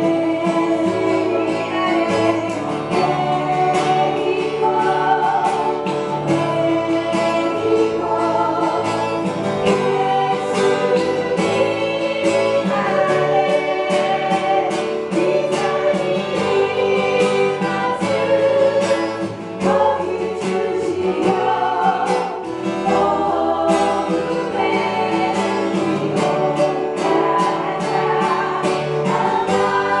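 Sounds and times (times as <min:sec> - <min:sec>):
congregation singing: 0:00.0 - 0:30.0
strummed acoustic guitar: 0:00.0 - 0:30.0.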